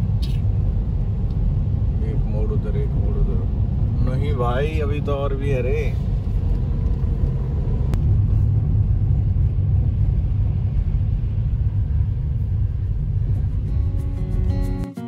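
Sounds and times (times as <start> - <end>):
car road rumble in tunnel: 0.0 - 14.7
background music: 13.6 - 15.0.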